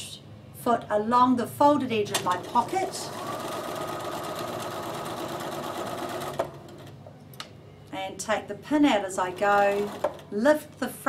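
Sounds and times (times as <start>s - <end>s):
sewing machine running: 2.1s - 7.0s, 9.2s - 10.4s.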